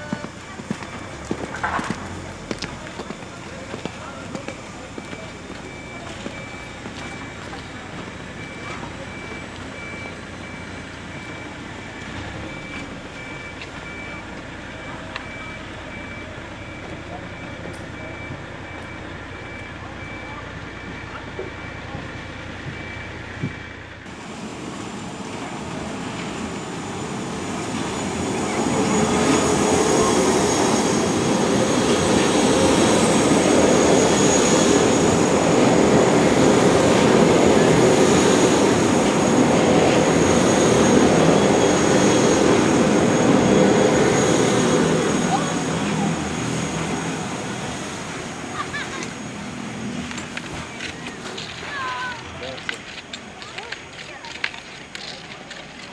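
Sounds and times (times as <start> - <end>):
electric trains running past: 0.0 - 55.9
steady high whine: 22.7 - 55.9.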